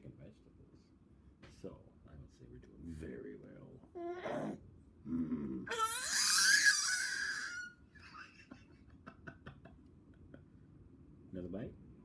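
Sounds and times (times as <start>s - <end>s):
baby squealing happily: 5.7s - 7.8s.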